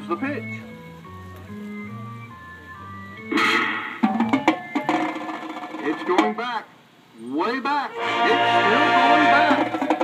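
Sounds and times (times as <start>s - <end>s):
marching band playing: 0.1s - 6.6s, 7.9s - 10.0s
sharp drum hits: 3.3s - 6.4s.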